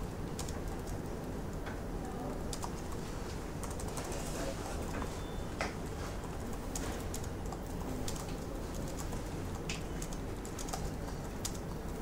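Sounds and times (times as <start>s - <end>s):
computer keyboard typing: 0.0s - 12.0s
low background hum: 0.0s - 12.0s.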